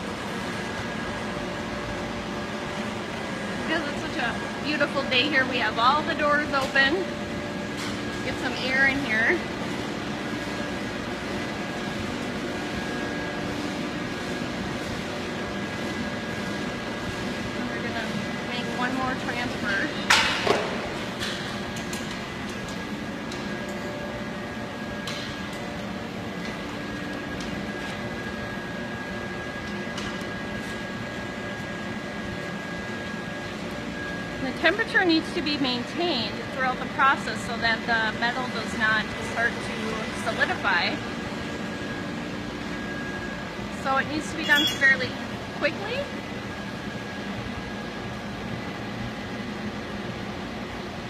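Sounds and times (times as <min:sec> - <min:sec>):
machinery drone: 0:00.0 - 0:49.8.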